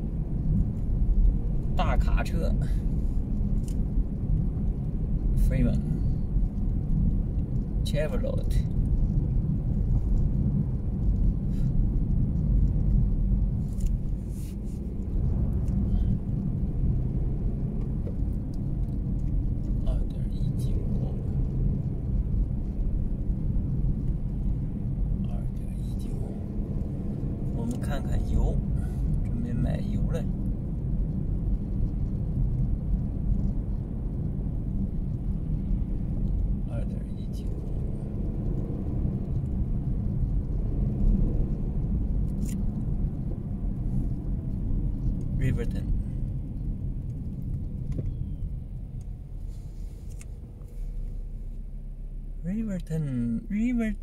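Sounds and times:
car driving rumble from inside: 0:00.0 - 0:54.0.

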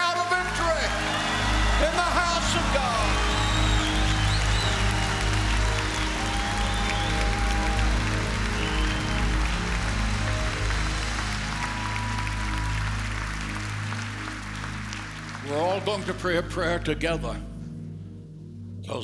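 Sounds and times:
congregation shouting: 0:00.0 - 0:10.1
people clapping: 0:00.0 - 0:16.8
keyboard chords over bass: 0:00.0 - 0:19.0.

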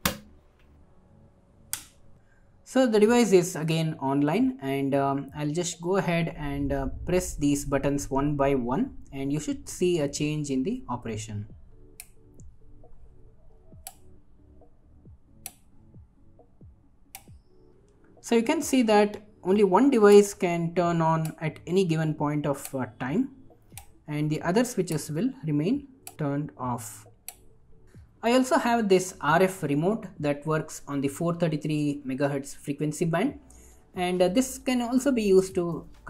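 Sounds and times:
rocker switch click: 0:01.7 - 0:02.0.

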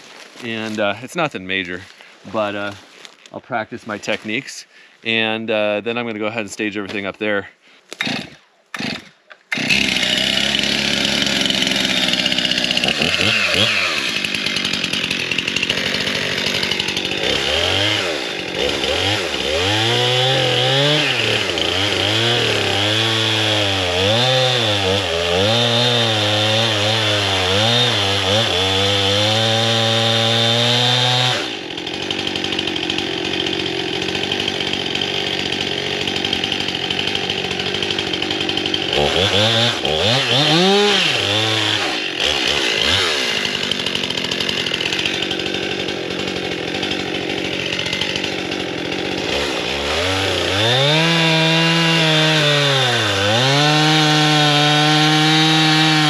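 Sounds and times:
chainsaw cutting tree trunk: 0:07.9 - 0:56.0.

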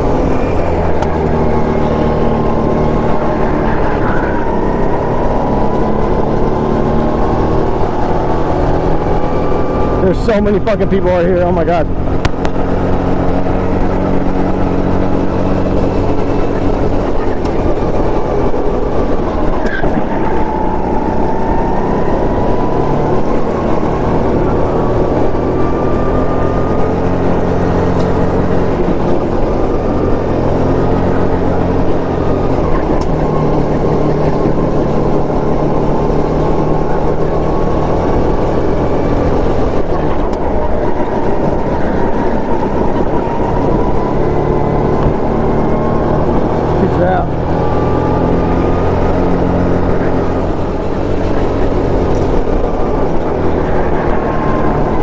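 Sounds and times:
go-kart engine revving: 0:00.0 - 0:55.0.

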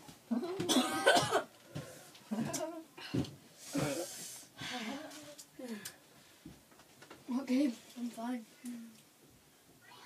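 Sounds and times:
boy coughing hard: 0:00.6 - 0:01.5.

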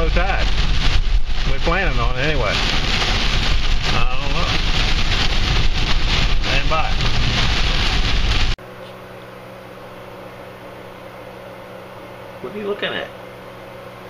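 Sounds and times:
heavy rain on car windshield: 0:00.0 - 0:08.6
road rumble: 0:00.0 - 0:08.6
steady low hum: 0:00.0 - 0:14.0.

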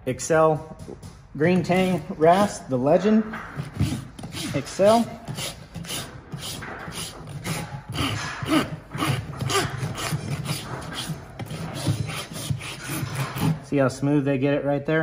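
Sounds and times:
hoof rasp scraping: 0:00.8 - 0:14.1.

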